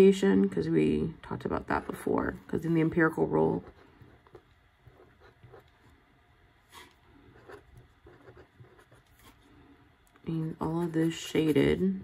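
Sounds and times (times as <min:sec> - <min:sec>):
pen scratching on paper: 0:03.5 - 0:05.9, 0:06.7 - 0:09.4.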